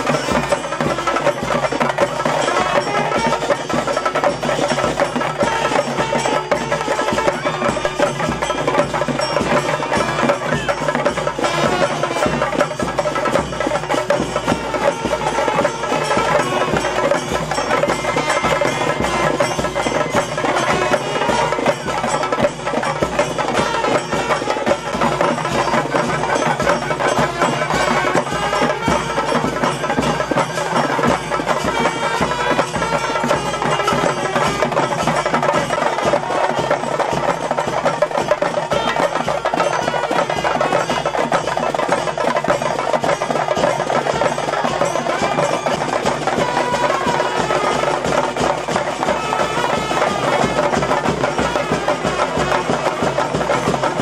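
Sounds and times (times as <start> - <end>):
fast dense percussion: 0.0 - 54.0
wind instrument melody: 0.0 - 54.0.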